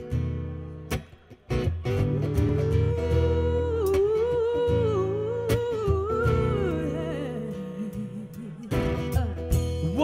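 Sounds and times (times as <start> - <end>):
woman singing wordless vocal: 2.2 - 10.0.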